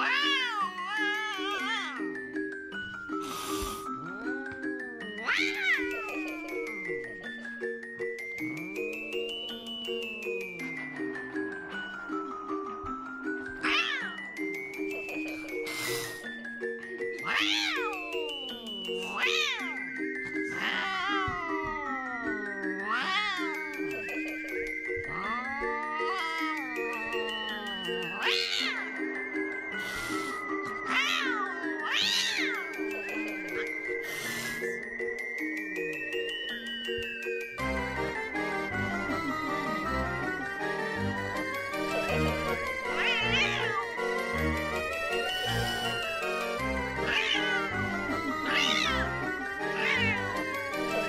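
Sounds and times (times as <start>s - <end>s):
cat meowing: 0.0s - 2.0s, 5.2s - 6.6s, 13.6s - 14.2s, 17.2s - 19.8s, 20.5s - 23.8s, 25.1s - 28.9s, 30.9s - 32.8s, 42.8s - 44.0s, 47.0s - 47.7s, 48.4s - 50.4s
background music: 0.0s - 51.0s.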